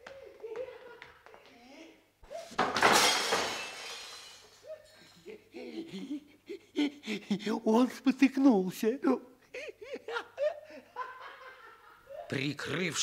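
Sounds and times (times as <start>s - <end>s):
voices: 12.1s - 13.0s.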